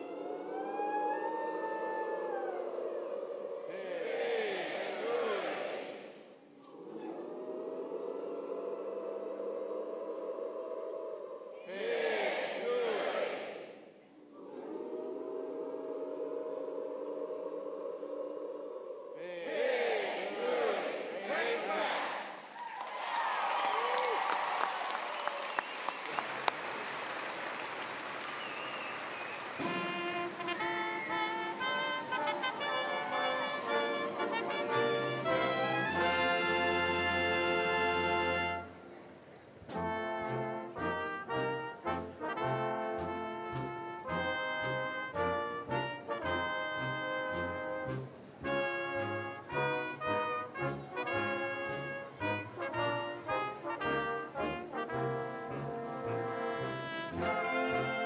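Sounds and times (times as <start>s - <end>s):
crowd cheering and applauding: 21.7s - 36.4s
concert band brass playing: 29.4s - 38.8s, 39.7s - 58.0s.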